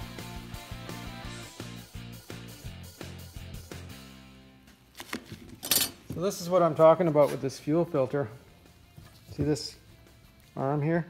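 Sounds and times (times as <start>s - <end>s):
background music: 0.0s - 11.0s
metal parts clinking: 5.6s - 6.0s.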